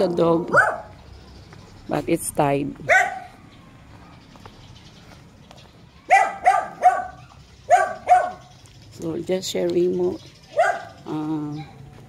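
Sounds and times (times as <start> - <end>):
dog barking: 0.5 - 0.9, 2.9 - 3.4, 6.1 - 8.5, 10.5 - 11.0.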